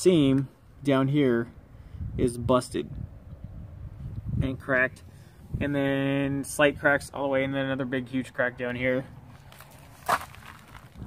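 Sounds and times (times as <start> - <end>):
soft scuff: 9.4 - 11.0.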